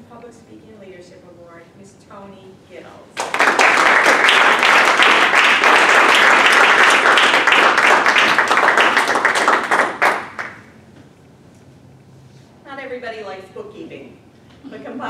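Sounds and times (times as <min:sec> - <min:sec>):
audience applauding: 0:03.2 - 0:10.6.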